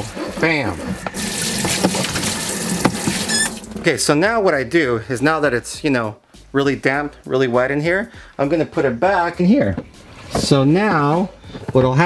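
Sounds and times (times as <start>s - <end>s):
water running into plastic tub: 0.4s - 4.3s.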